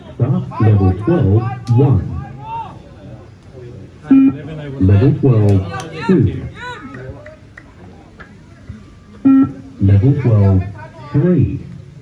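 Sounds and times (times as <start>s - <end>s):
loud electronic beep: 4.1s - 4.4s, 9.2s - 10.0s.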